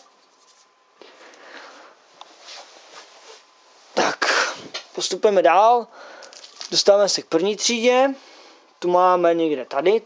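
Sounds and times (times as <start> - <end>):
rustling of objects handled: 6.2 - 7.2.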